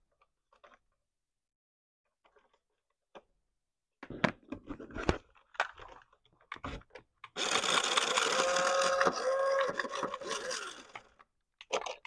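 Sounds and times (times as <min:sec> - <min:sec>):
toy car motor whirring: 0:07.4 - 0:11.2.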